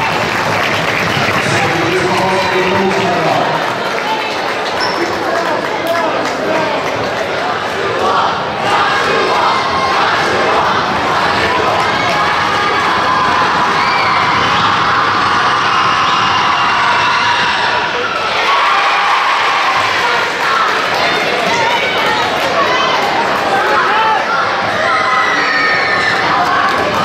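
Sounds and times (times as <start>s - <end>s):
crowd cheering and shouting: 0.0s - 27.0s.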